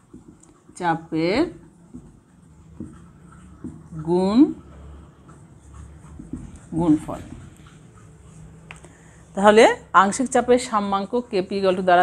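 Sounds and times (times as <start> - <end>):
marker scratching on whiteboard: 1.9 - 4.0, 4.6 - 8.8.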